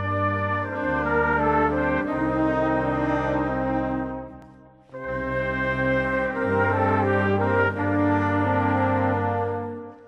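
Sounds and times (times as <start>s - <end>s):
brass band playing a march: 0.0s - 10.0s.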